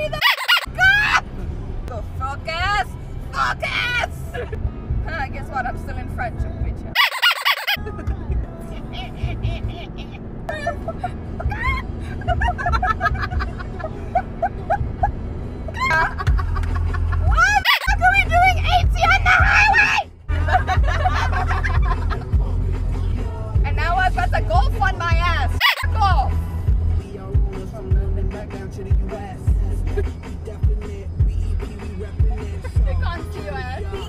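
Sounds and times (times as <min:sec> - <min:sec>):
car hum on road: 0:00.0 - 0:34.0
women singing with music: 0:18.2 - 0:34.0.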